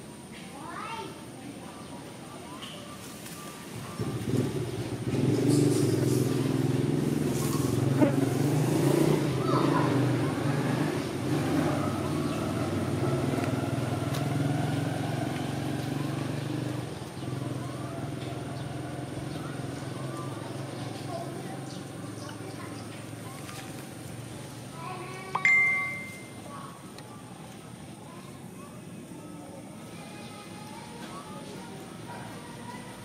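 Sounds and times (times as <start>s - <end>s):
vehicle engine running: 3.7s - 24.7s.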